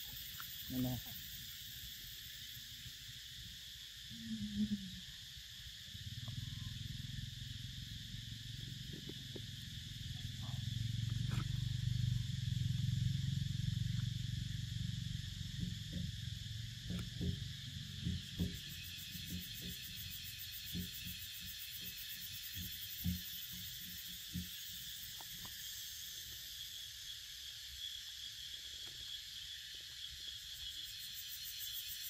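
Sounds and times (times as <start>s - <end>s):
high-pitched insect drone: 0.0s - 32.0s
short low calls: 4.1s - 5.2s.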